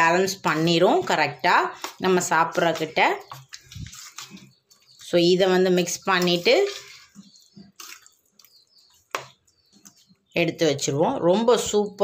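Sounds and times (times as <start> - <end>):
spoon stirring wet rice: 0.0 - 10.3.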